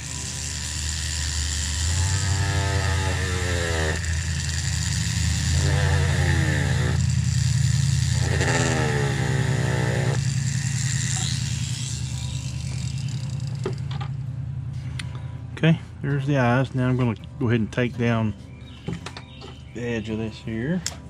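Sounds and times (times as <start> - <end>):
rotary tool cutting wood: 0.0 - 14.1.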